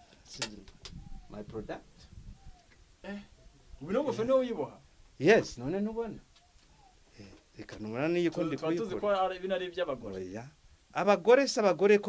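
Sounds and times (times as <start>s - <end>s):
man murmuring: 3.0s - 3.4s.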